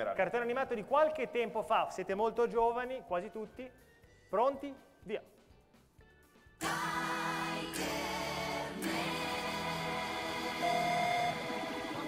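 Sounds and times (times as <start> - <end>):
cartoon theme music: 6.6 - 12.0.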